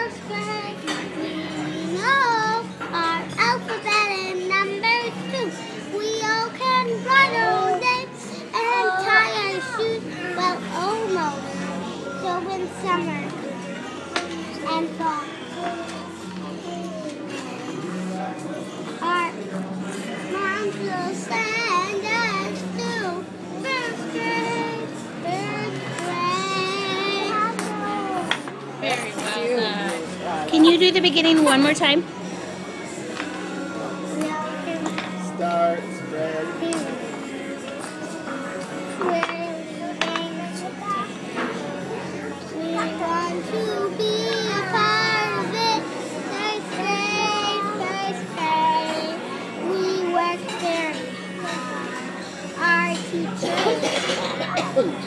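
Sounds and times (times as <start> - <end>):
girl singing: 0.0 - 11.4, 20.2 - 28.4, 38.9 - 41.2, 42.5 - 51.7, 52.6 - 53.8.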